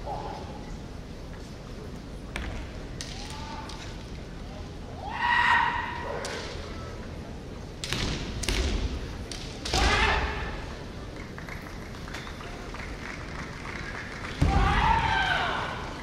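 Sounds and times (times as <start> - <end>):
bamboo swords striking: 7.8 - 10.4.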